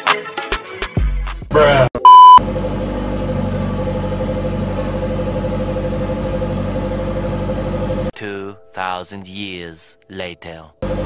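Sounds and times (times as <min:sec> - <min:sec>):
loud single beep: 0:02.0 - 0:02.4
engine idling: 0:02.4 - 0:08.1.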